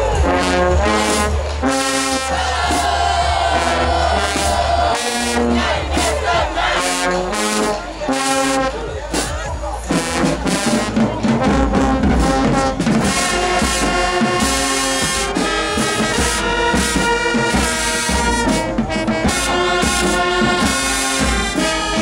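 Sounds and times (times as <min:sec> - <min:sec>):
marching band brass chords: 0:00.0 - 0:22.0.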